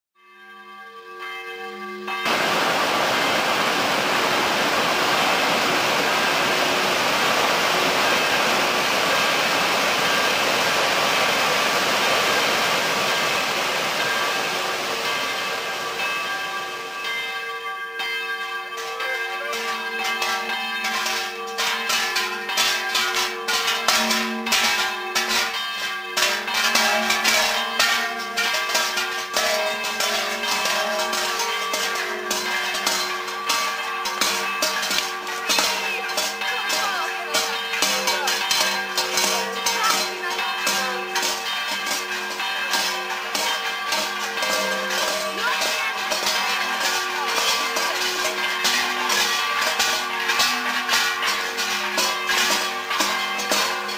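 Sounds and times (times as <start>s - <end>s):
large bells clanging: 0.2s - 53.9s.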